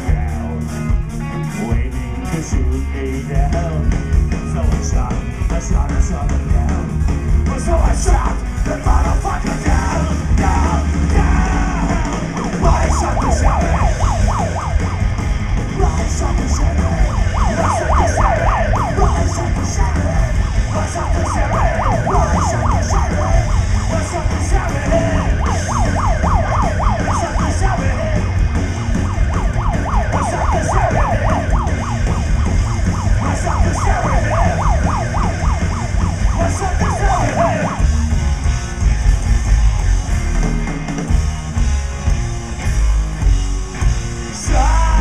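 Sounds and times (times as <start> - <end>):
drums: 0.0 - 45.0
upright bass: 0.0 - 45.0
fast wavering lead line: 12.2 - 24.4.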